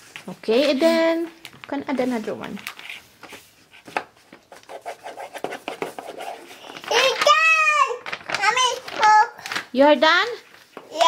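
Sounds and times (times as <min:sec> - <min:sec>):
paper being handled: 0:00.0 - 0:11.0
crayon scribbling on paper: 0:04.5 - 0:06.8.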